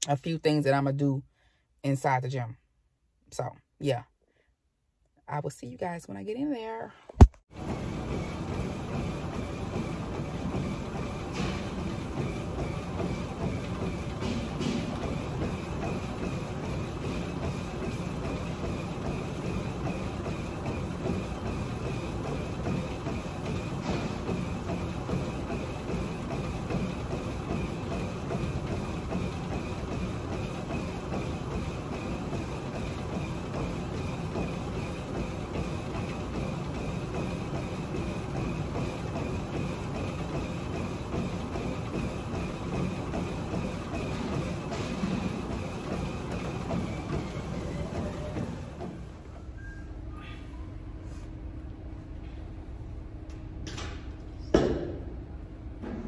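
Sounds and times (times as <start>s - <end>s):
footfalls on treadmill belt: 7.2s - 49.4s
treadmill motor and belt noise: 7.5s - 56.0s.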